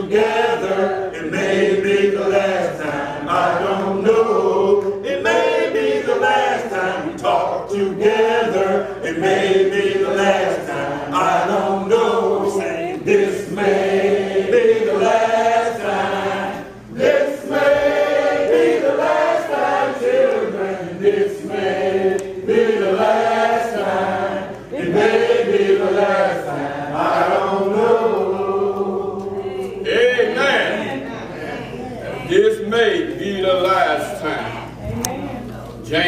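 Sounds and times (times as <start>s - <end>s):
congregation singing a hymn: 0.0s - 34.9s.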